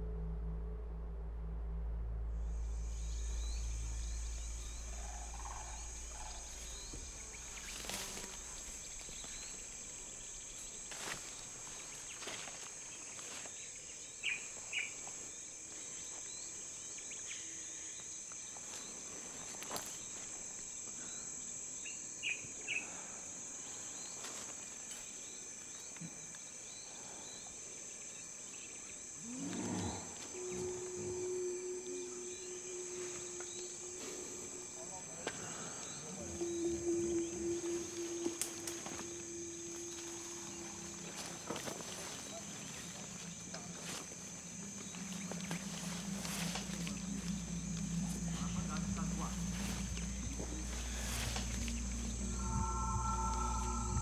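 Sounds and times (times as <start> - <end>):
held low tones: 0.0 - 12.6, 29.2 - 54.0
low drone: 0.0 - 12.6, 29.2 - 54.0
high insect drone: 0.0 - 54.0.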